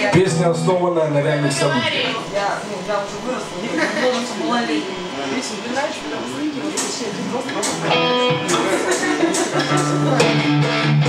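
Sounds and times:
indistinct voices: 0:00.0 - 0:10.6
electric guitar chord: 0:00.0 - 0:11.0.

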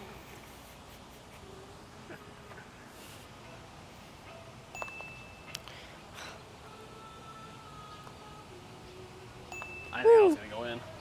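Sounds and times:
faint chime-like ringing: 0:03.4 - 0:05.6, 0:09.5 - 0:10.4.

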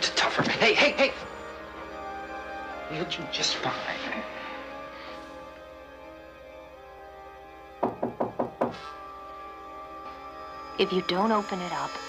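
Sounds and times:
dramatic underscore with held tones: 0:00.0 - 0:12.0
loud knocks on a door: 0:07.8 - 0:08.8.

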